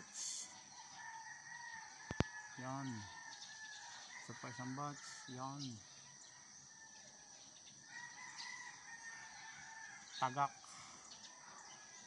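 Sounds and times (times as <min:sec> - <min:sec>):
distant rooster crowing: 0:00.0 - 0:12.0.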